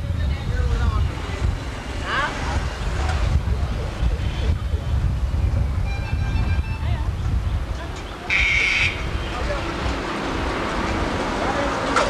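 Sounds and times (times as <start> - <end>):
wind on microphone: 0.0 - 11.9
traffic rumble: 0.0 - 12.0.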